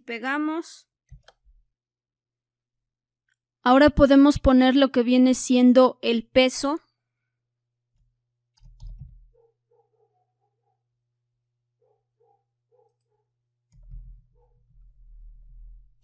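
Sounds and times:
keyboard key clicks: 8.6 - 9.2.

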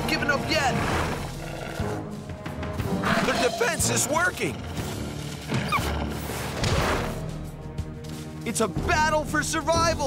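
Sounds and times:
cartoon score music: 0.0 - 7.5
wolf yelp: 5.5 - 6.0.

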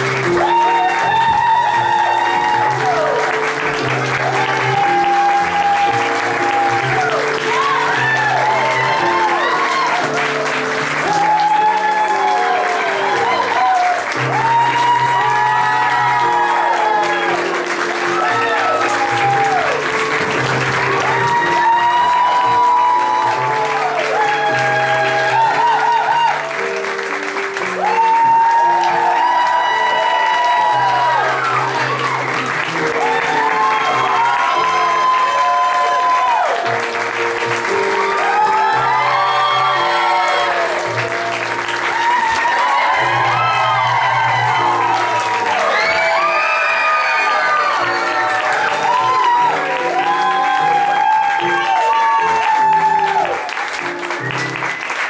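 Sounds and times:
audience applauding: 0.0 - 55.0
loud recorded music: 0.0 - 55.0.

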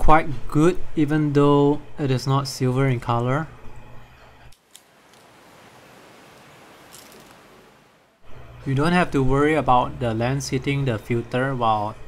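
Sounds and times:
low steady hiss: 4.5 - 8.2.

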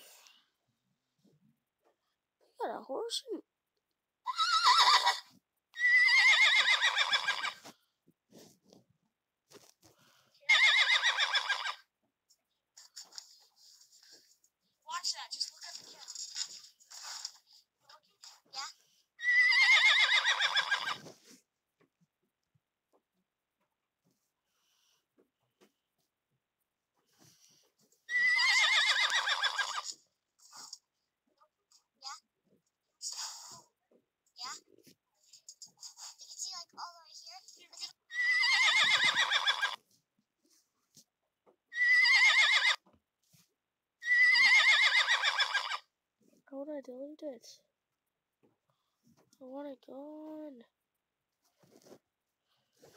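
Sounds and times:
horse neighing: 4.3 - 7.6, 10.5 - 11.8, 19.2 - 21.0, 28.1 - 29.9, 38.1 - 39.8, 41.7 - 42.8, 44.0 - 45.9.

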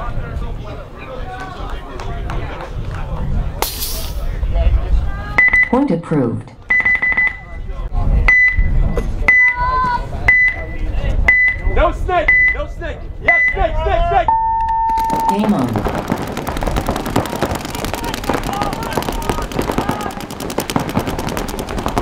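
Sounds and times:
short high beeps: 6.7 - 7.4
paintball markers firing rapidly: 14.9 - 22.0
players shouting: 15.0 - 22.0.

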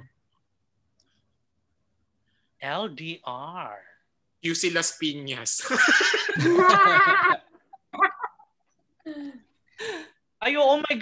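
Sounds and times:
people laughing loudly: 5.6 - 8.5.

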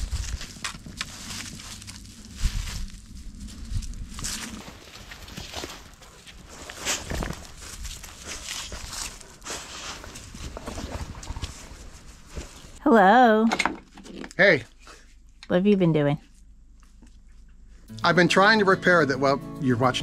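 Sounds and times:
dog footsteps on dry leaves: 0.0 - 12.8.

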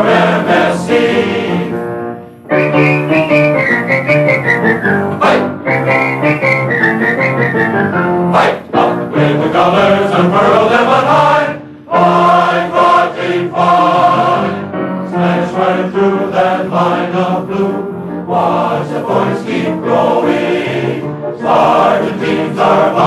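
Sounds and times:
men's choir singing in harmony: 0.0 - 23.0
whistled melody: 2.4 - 8.3.

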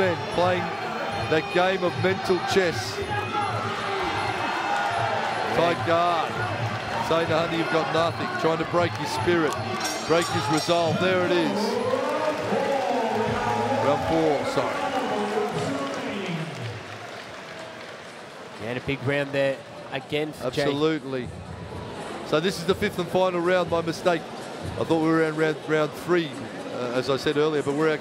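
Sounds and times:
crowd shouting: 0.0 - 16.4.

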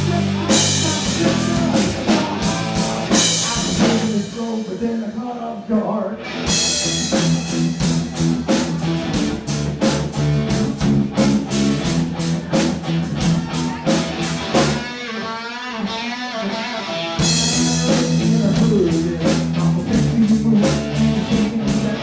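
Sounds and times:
drum kit beat: 0.0 - 5.0, 6.3 - 15.0, 17.2 - 22.0
electric guitar: 0.0 - 5.0, 6.0 - 22.0.

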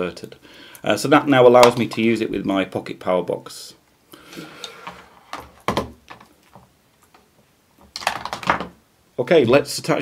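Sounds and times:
objects knocking on wooden table: 5.3 - 6.3, 8.0 - 8.8.

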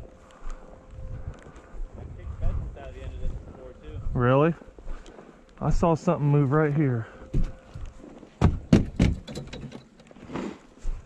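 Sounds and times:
footsteps in dry grass: 0.0 - 8.4, 10.2 - 11.0
thuds against sheet metal and pipes: 8.4 - 9.8.

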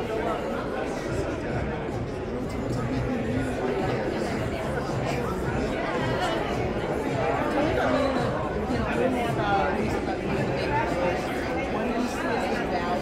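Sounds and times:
background music: 0.0 - 13.0
crowd chatter: 0.0 - 13.0
people talking: 0.0 - 13.0.

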